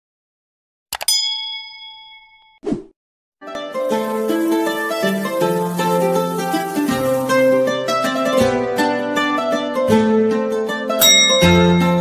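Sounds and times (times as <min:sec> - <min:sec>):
notification bell ding: 0:01.0 - 0:02.6.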